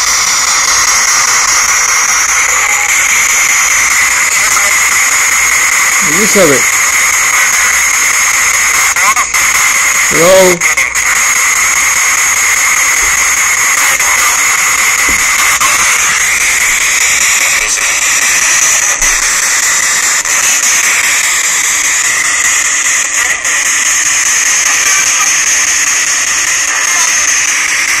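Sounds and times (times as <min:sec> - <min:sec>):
loud radio static hiss: 0:00.0 - 0:28.0.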